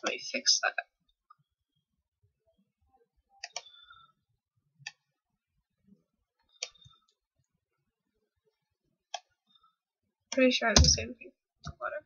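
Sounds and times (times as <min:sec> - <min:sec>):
computer mouse clicks: 0:03.4 - 0:03.8, 0:06.5 - 0:07.0.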